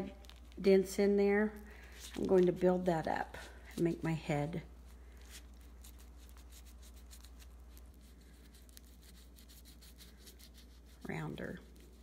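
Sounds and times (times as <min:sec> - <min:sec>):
fingertip rubbing clay: 0:05.2 - 0:12.0.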